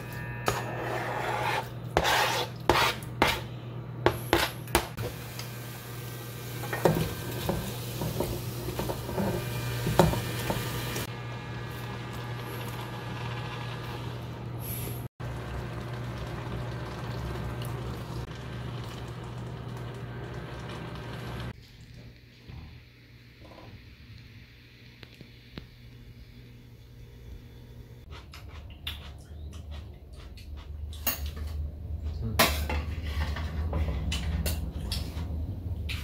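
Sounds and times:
spatula knocking and scraping pot: 0.5s - 3.5s
food sizzling in a pot: 5.0s - 21.6s.

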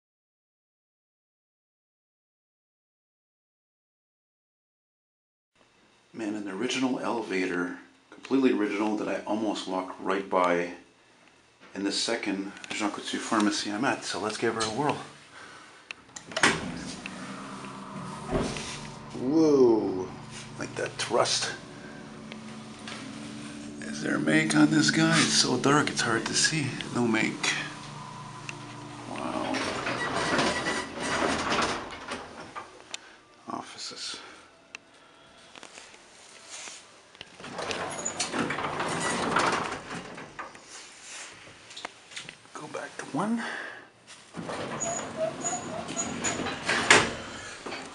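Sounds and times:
elevator machinery hum: 16.0s - 32.7s, 44.4s - 47.9s
loud mechanical clunk: 16.2s - 19.1s.

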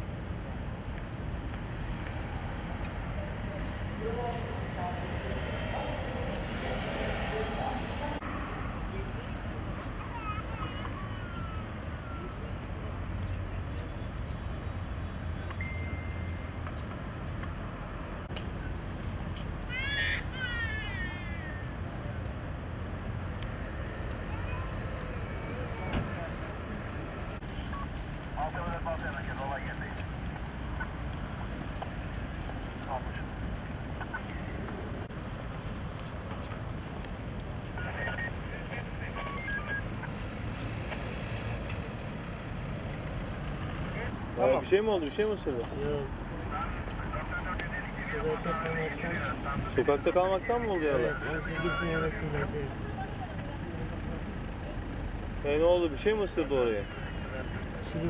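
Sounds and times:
traffic rumble: 0.0s - 58.0s
voices of passers-by: 0.0s - 58.0s.

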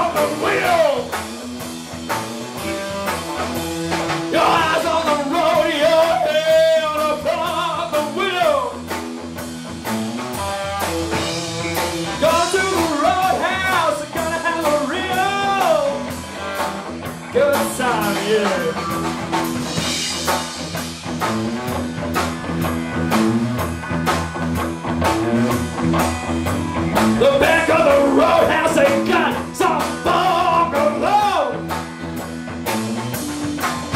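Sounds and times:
man singing into microphone: 0.0s - 1.1s, 4.3s - 8.8s, 12.2s - 16.1s, 17.3s - 18.9s, 27.2s - 31.6s
drum kit: 0.0s - 33.9s
electric guitar: 0.0s - 33.9s.

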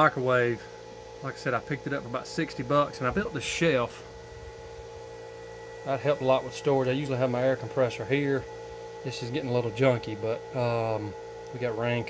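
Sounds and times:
steady electrical hum: 0.0s - 12.0s.

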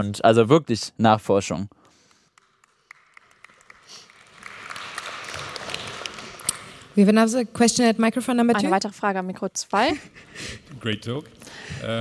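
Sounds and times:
audience applause: 2.4s - 6.8s.

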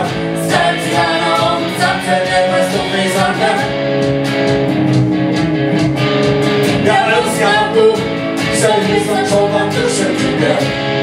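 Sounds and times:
electric guitar rhythm: 0.0s - 11.0s
woman singing: 0.4s - 3.7s, 6.8s - 10.3s.

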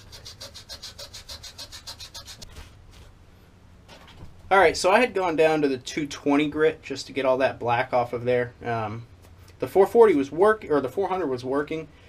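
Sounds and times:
sandpaper rubbing on metal: 0.0s - 3.1s.

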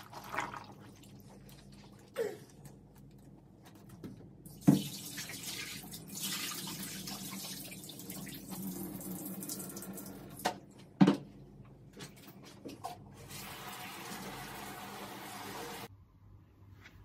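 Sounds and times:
water running from tap: 4.5s - 10.4s, 13.2s - 15.9s.

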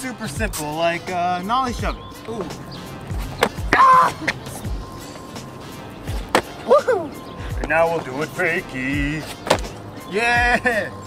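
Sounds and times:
background music: 0.0s - 11.0s
skateboard clacking on court: 2.2s - 4.5s, 6.0s - 6.6s, 9.2s - 9.8s
person exclaiming: 3.7s - 4.3s, 6.7s - 7.2s.

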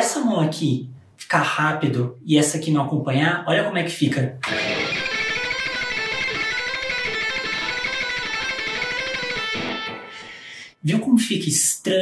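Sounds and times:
electric guitar fast picking: 4.4s - 10.6s.

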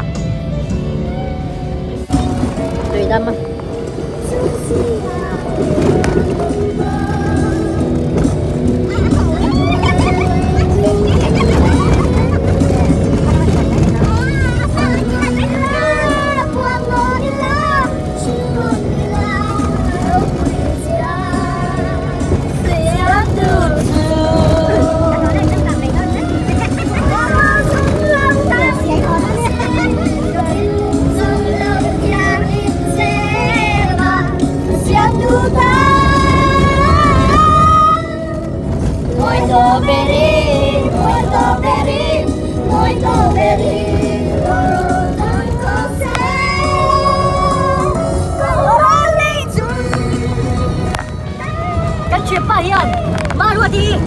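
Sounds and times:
car engine and tyre rumble: 0.0s - 54.0s
voices: 1.1s - 54.0s
young men singing loudly: 39.2s - 51.1s.

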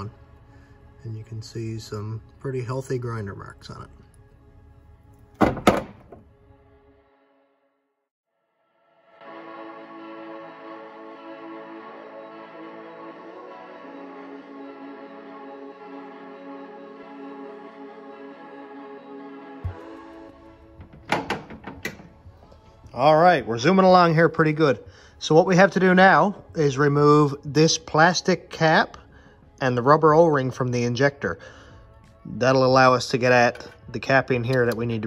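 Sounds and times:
metal parts knocking on hard surface: 20.8s - 22.1s.

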